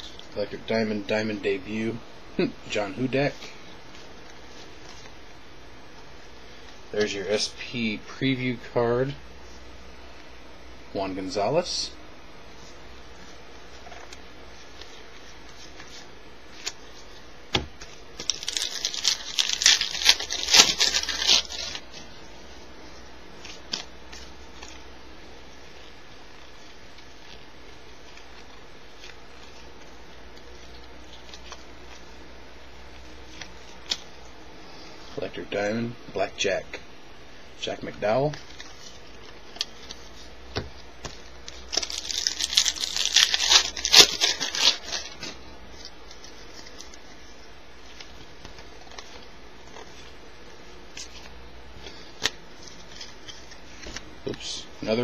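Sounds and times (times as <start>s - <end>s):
foil wrapper tearing and crinkling: 17.9s - 22.1s, 41.0s - 50.2s, 50.8s - 54.6s.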